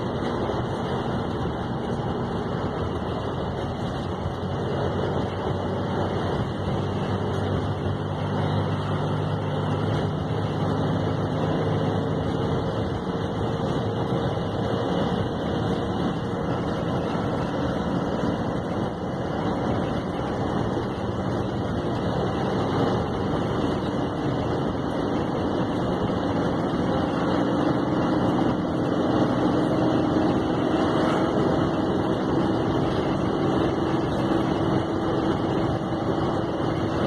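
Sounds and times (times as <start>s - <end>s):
engine drone: 0.0s - 37.0s
road and wind noise: 0.0s - 37.0s.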